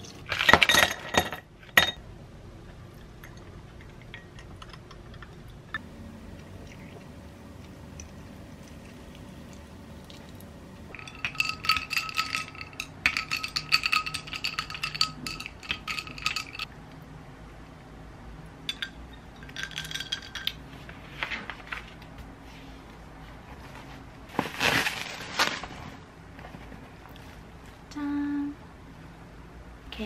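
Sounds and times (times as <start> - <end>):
ice cubes clinking in glass: 10.9 - 16.7, 18.7 - 20.6.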